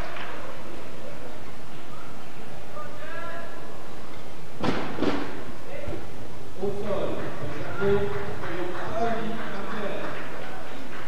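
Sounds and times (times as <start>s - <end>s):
sharp thuds: 4.6s - 5.4s.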